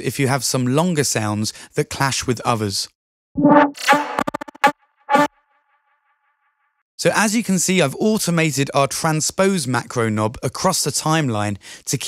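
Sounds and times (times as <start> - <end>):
synth lead hit: 3.4 - 5.3.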